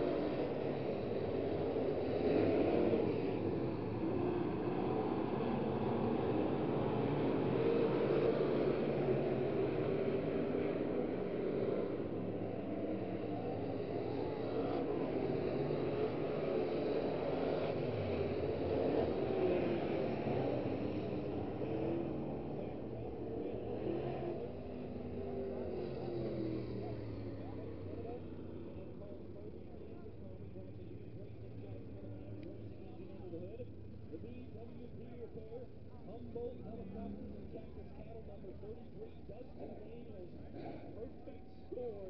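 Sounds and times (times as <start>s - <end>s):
race car engines passing: 0.0s - 42.0s.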